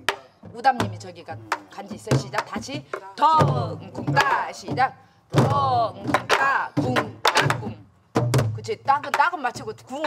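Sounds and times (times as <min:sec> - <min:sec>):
stick raps on drum shell: 0:00.0 - 0:04.9, 0:05.6 - 0:07.8, 0:08.6 - 0:10.0.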